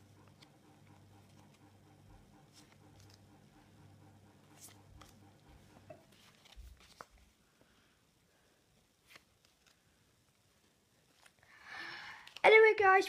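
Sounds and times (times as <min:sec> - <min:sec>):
paper stickers rustling: 0:02.5 - 0:03.2, 0:06.1 - 0:07.4.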